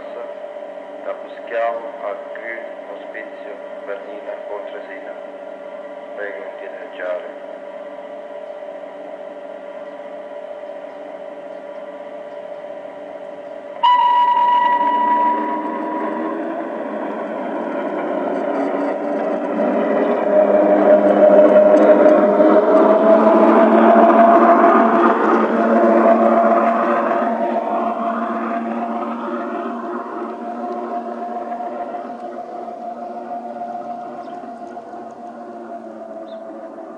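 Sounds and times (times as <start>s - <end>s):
electric railcar hum: 0.0s - 36.9s
model train wheels on track: 0.0s - 36.9s
one-note train signal: 0.0s - 36.9s
motor whine rising in pitch: 7.6s - 36.9s.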